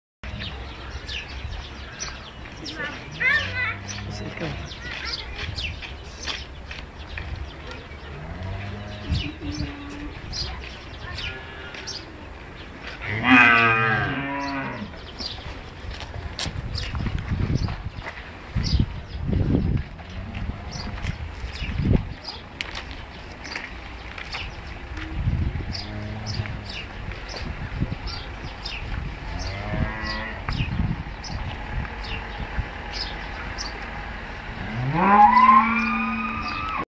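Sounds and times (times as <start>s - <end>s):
cow mooing: 13.0s - 14.9s, 34.7s - 36.8s.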